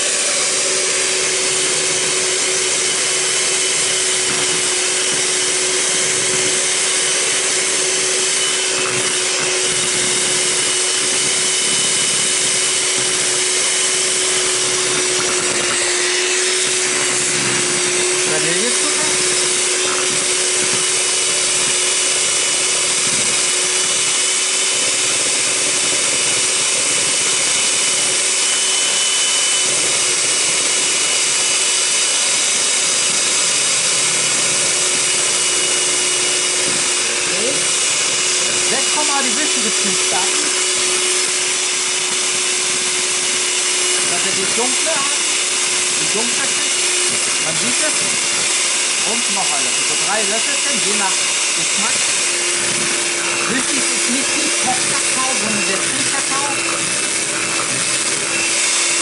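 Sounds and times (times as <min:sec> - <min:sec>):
electric hand mixer whirring: 0:00.0 - 0:59.0.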